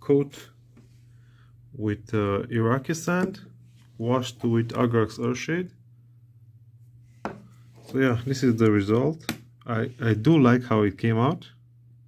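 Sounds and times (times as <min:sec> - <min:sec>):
faint low hum: 0:00.0 - 0:12.0
plastic pot tapping on wooden desk: 0:07.2 - 0:07.5.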